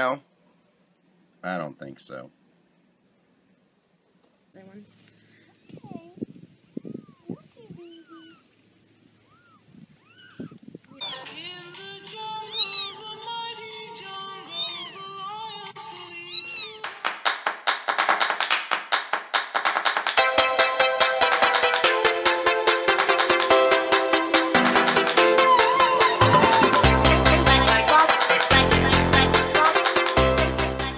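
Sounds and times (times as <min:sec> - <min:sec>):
kitten mewing: 0:06.8 - 0:08.5, 0:09.2 - 0:11.2, 0:12.4 - 0:13.1, 0:14.4 - 0:15.2, 0:16.3 - 0:16.9
electronic dance music: 0:17.5 - 0:30.9
background music: 0:19.8 - 0:30.9.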